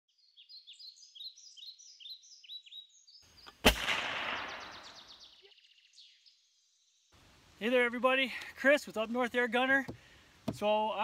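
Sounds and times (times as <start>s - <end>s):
birds chirping: 0.1s - 11.0s
gunshot with echo: 3.6s - 5.1s.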